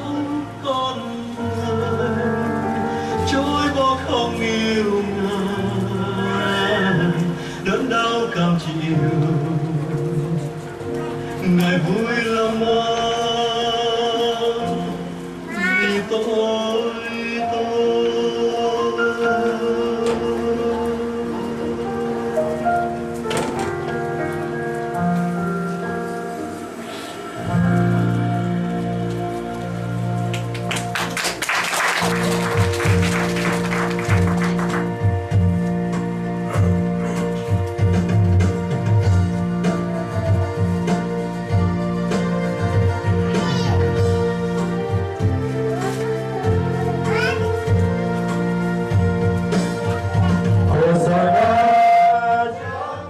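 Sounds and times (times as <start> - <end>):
electronic keyboard church chords: 0.0 - 53.0
congregation clapping: 30.2 - 35.2.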